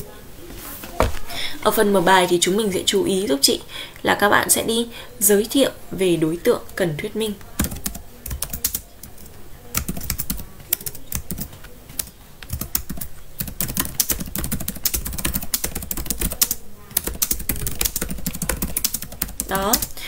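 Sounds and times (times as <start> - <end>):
computer keyboard typing: 7.4 - 20.0.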